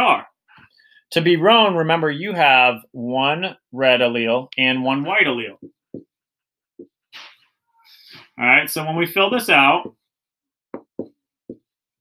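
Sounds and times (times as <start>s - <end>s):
marker knocking on paper pad: 10.7s - 11.8s.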